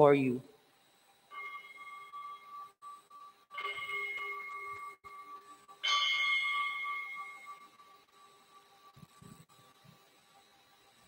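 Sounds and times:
altar bell ringing: 1.3 - 8.0.

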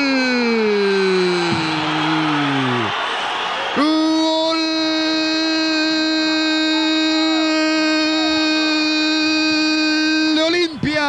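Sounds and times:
commentator's drawn-out goal cry: 0.0 - 3.0, 3.7 - 11.0
crowd noise: 0.0 - 11.0.

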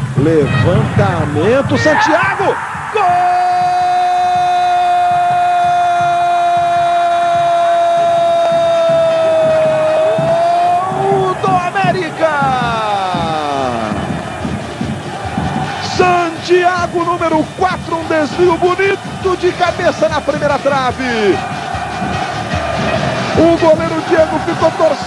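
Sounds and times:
commentator's drawn-out goal shout: 0.2 - 14.1, 15.8 - 21.5, 23.4 - 25.0.

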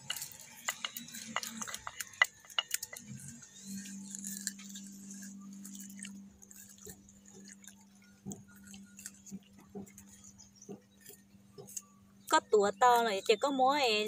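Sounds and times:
wooden pestle knocking in mortar: 0.0 - 3.0.

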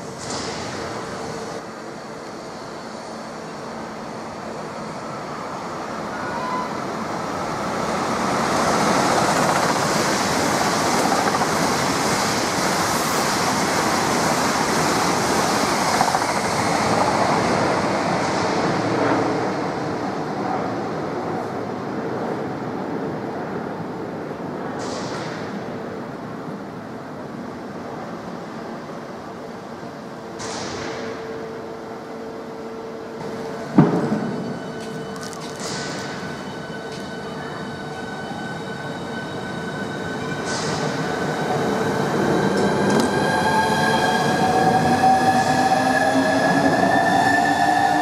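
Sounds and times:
train passing: 0.0 - 30.4, 31.0 - 48.0.

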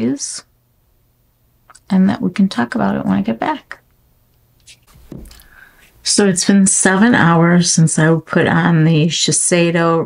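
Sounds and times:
faint knocks: 5.0 - 5.4.

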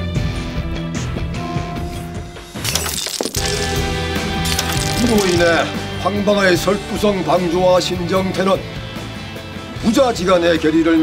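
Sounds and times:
pottery shards clinking on stone: 2.6 - 3.8, 4.4 - 5.6.

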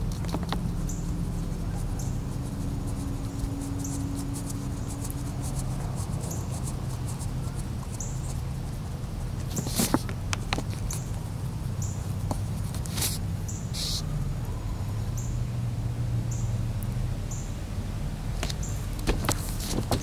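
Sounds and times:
crayon scratching on paper: 0.0 - 14.0
low background hum: 0.0 - 20.0.

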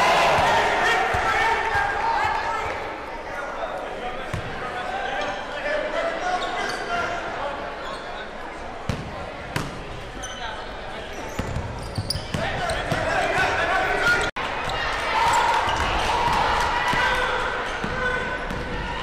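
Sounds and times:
echoing chatter of people: 0.0 - 19.0
sneaker squeaks on hardwood: 10.2 - 13.0.

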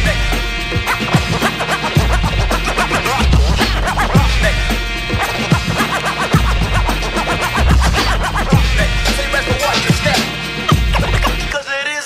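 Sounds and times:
wavering high-pitched sound: 0.0 - 11.6
turntable scratching: 0.0 - 11.7
hip hop beat with heavy bass: 0.0 - 12.0.

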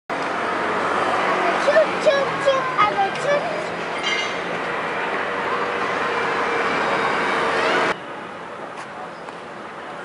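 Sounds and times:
city traffic noise: 0.1 - 10.0
distant voices: 0.3 - 8.0.

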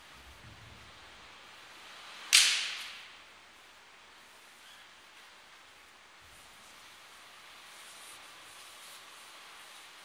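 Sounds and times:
sharp crack: 2.2 - 3.3.

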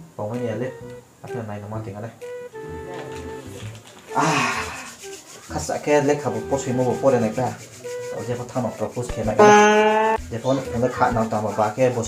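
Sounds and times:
man speaking: 0.2 - 4.9, 5.5 - 7.6, 8.2 - 9.5, 10.3 - 12.0.

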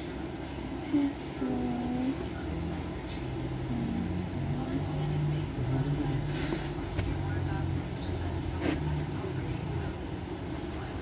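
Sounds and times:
indistinct background voices: 0.5 - 11.0.

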